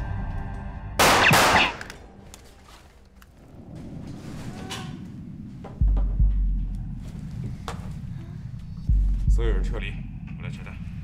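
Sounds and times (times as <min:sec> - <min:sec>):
background music: 0:00.0 - 0:03.3
rifle shot crack: 0:01.0 - 0:02.0.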